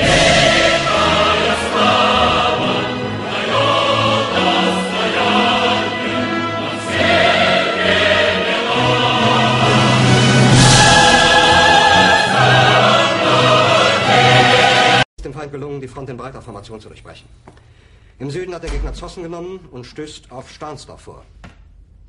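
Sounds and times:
choir singing sustained chords: 0.0s - 15.1s
orchestral accompaniment: 0.0s - 15.1s.

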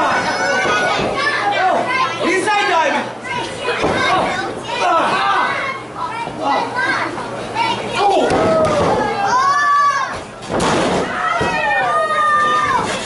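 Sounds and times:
children shouting: 0.0s - 2.3s, 7.9s - 10.2s, 11.0s - 13.0s.

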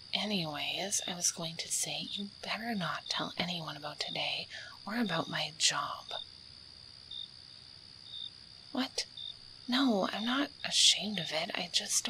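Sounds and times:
crickets trilling: 0.0s - 12.0s
higher cricket chirp: 0.0s - 12.0s.

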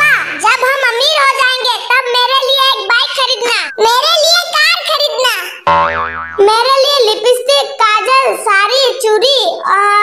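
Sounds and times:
wobbling boing sound effect: 5.7s - 6.6s.

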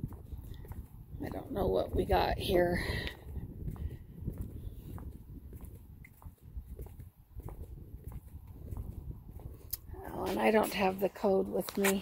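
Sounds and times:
footsteps on concrete: 0.0s - 12.0s
wind rumble on microphone: 0.0s - 12.0s.

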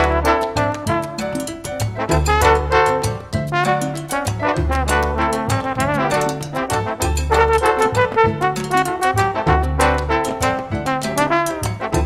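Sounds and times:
latin jazz music: 0.0s - 12.0s.

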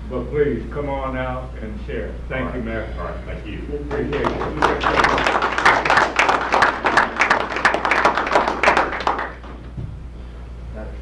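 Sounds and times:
audience applauding: 3.9s - 9.7s.

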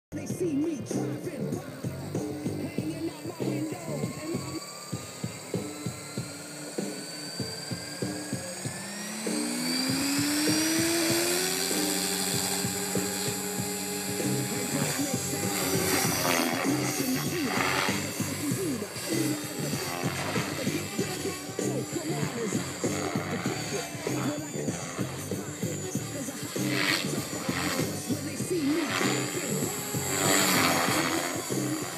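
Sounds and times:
rc helicopter rotor whine: 0.1s - 31.9s
song with steady beat: 0.1s - 31.9s.

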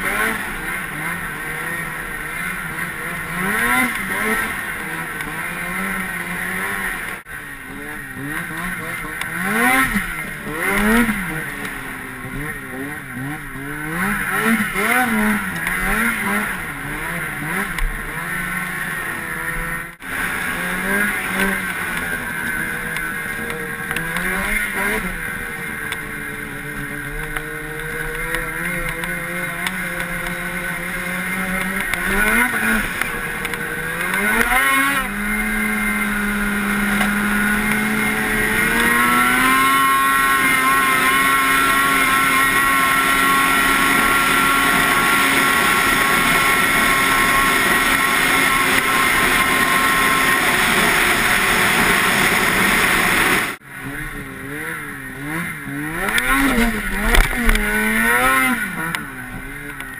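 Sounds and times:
snowmobile engine revving: 0.0s - 59.9s.

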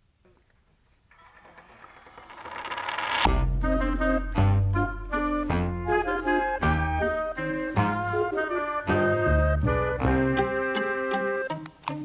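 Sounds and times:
instrumental music chords and bass: 3.3s - 12.0s.

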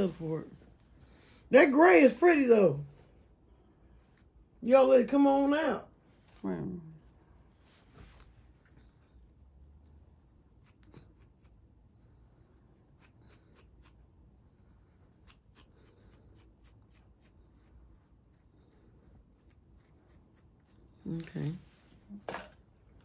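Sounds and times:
scalp scratching: 8.1s - 21.6s.

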